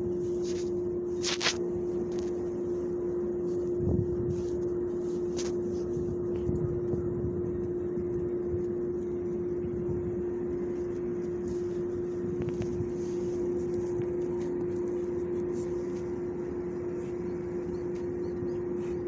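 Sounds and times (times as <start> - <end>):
droning machine hum: 0.0 - 19.0
low rumble: 0.0 - 19.0.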